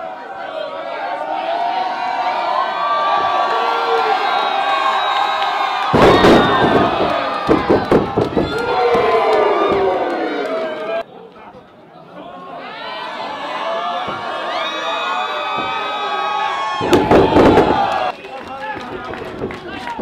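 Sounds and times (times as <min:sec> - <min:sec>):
crowd cheering and shouting: 0:00.0 - 0:11.1, 0:12.2 - 0:20.0
body slamming on ring mat: 0:06.0 - 0:08.6
sharp thuds: 0:06.0 - 0:09.1.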